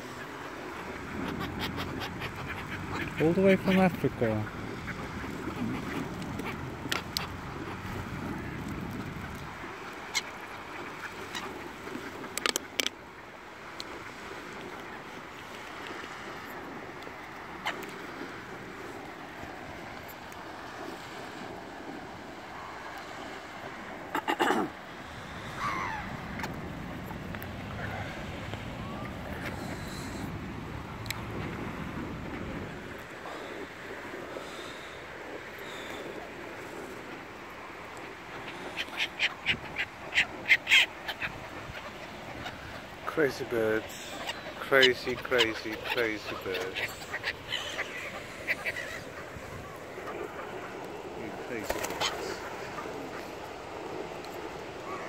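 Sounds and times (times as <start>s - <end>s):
bird calls: 1.0s - 7.9s, 24.0s - 26.6s, 33.3s - 36.4s, 38.3s - 54.2s
ducks quacking: 1.0s - 7.9s, 24.1s - 24.8s, 38.3s - 53.3s.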